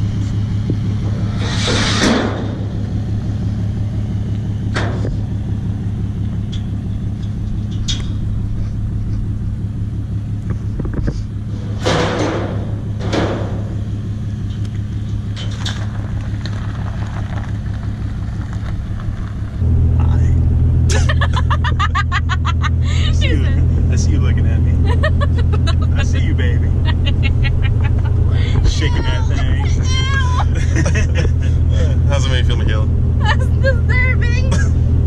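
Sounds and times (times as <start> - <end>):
diesel engine drone inside cab: 0.0 - 35.0
people laughing: 20.9 - 32.2.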